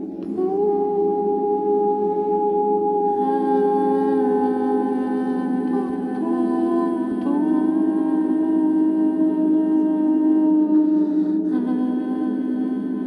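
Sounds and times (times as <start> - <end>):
ambient drone of vocal tones: 0.0 - 13.0.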